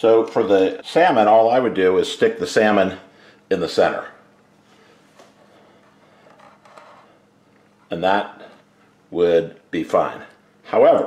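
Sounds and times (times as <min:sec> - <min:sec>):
man speaking: 0:00.0 - 0:04.3, 0:07.9 - 0:11.0.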